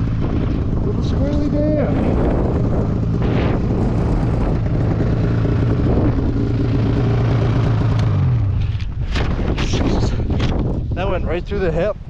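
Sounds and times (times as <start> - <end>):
snowmobile engine idling: 0.0 - 11.9.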